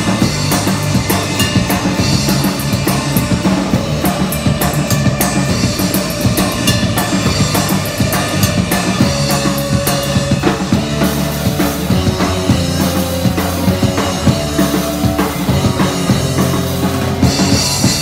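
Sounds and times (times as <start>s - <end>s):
drums and cymbals: 0.0s - 18.0s
surf punk band playing: 0.0s - 18.0s.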